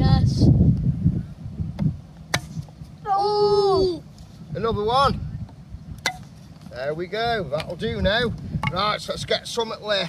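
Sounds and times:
wind rumble on microphone: 0.0 - 9.8.

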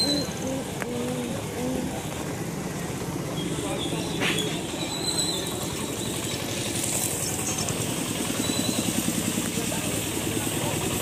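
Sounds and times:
background voices: 0.0 - 2.3
vehicle engine idling: 0.0 - 11.0.

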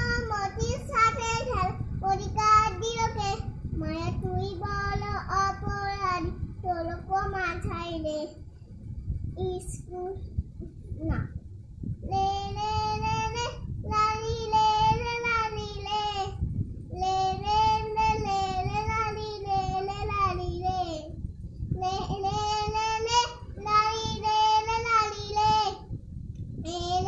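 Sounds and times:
child singing unaccompanied: 0.0 - 8.4, 12.0 - 21.2, 21.8 - 25.9, 26.6 - 27.0.

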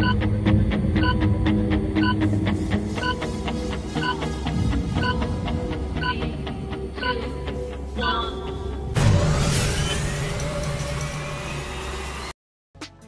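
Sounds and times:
steady ticking beat: 0.0 - 9.0
held low tones: 0.0 - 9.4.

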